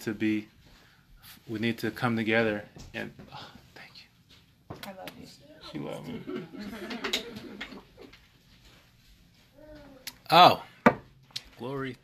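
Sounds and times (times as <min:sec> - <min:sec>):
man laughing: 0:06.0 - 0:07.8.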